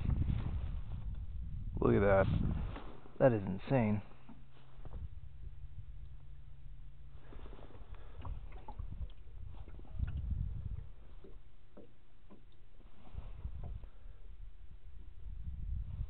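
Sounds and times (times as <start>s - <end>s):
wind rumble on microphone: 0.0s - 16.0s
waves slapping against boat hull: 2.2s - 3.2s, 4.0s - 5.2s, 7.1s - 14.1s
light knocks and ticks: 11.2s - 12.6s.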